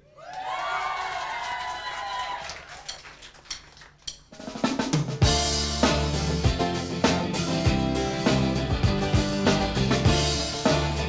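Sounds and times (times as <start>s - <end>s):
rock band playing: 5.0s - 11.0s.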